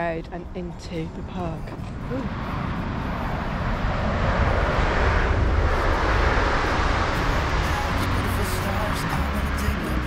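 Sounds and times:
train passing: 0:00.0 - 0:10.0.

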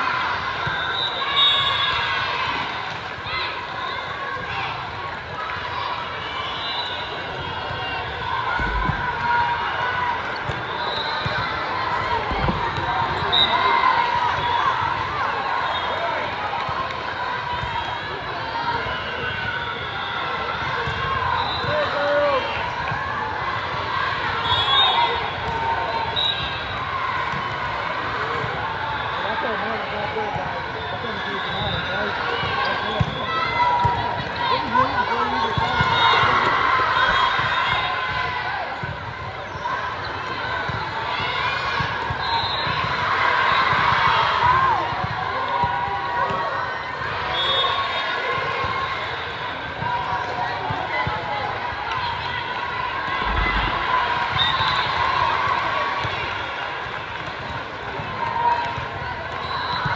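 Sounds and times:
spectators chattering and shouting: 0:00.0 - 0:59.9.

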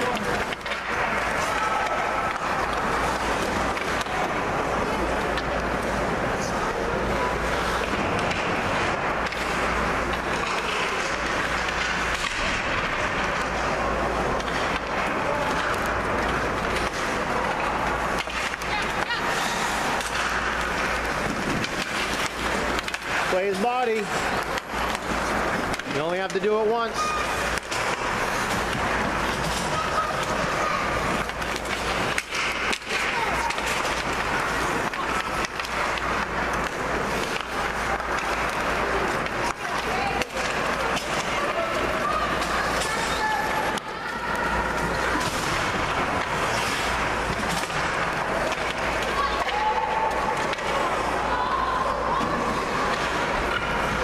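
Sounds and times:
skate blades scraping ice: 0:00.0 - 0:54.0
spectator chatter: 0:00.0 - 0:54.0.

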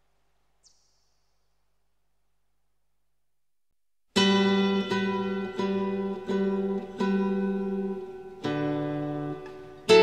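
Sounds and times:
plucked string instrument: 0:04.2 - 0:10.0.

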